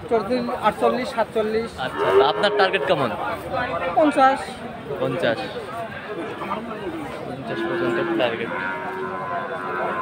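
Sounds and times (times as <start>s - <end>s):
cow mooing: 1.9s - 3.1s, 7.5s - 10.0s.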